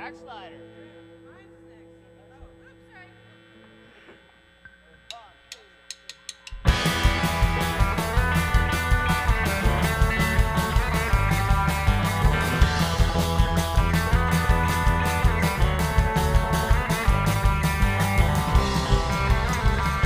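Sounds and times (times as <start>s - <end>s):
held electric guitar notes: 0.0s - 5.2s, 6.5s - 20.0s
amplifier hum: 0.0s - 20.0s
sharp clicks: 4.6s - 6.7s
rock band playing: 6.5s - 20.0s.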